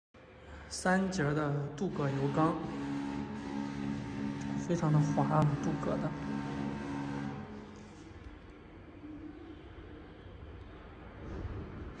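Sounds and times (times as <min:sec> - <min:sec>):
hydraulic pump humming: 0:01.8 - 0:08.5.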